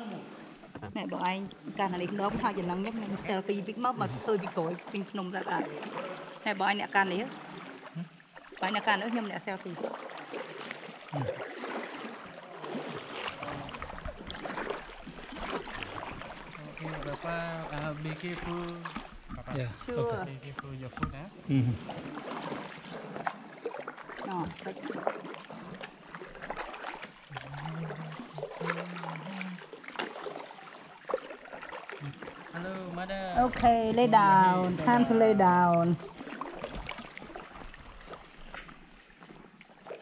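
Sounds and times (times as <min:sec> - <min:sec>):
paddle splashing water: 0:00.0 - 0:40.0.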